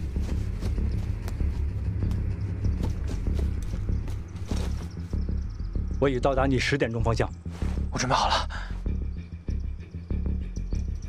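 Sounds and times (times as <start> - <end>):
low droning bass: 0.0 - 11.0.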